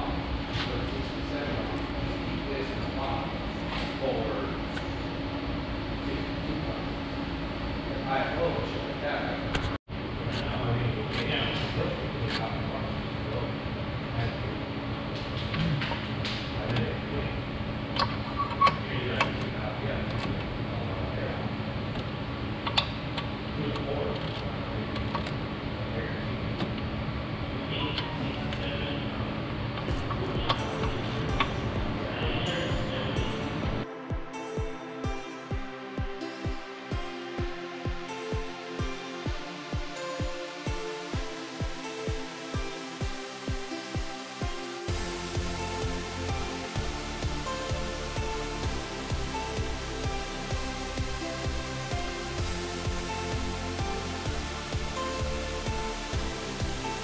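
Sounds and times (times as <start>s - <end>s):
music: 0.0s - 9.8s, 10.4s - 13.4s, 15.1s - 17.3s, 17.9s - 21.4s, 27.7s - 57.0s
steady hum: 0.0s - 57.0s.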